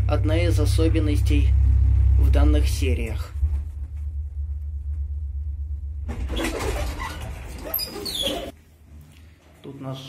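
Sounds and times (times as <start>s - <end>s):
lift low hum: 0.0s - 8.6s
rattling clatter with squeals: 6.1s - 8.5s.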